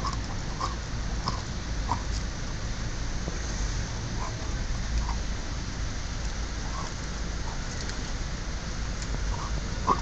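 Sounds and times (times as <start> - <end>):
rain-like hiss: 0.0 - 10.0.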